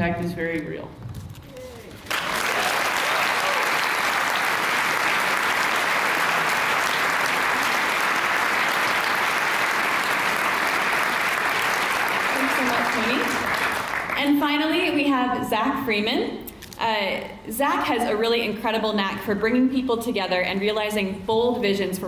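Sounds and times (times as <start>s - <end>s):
audience applauding: 2.0s - 14.3s.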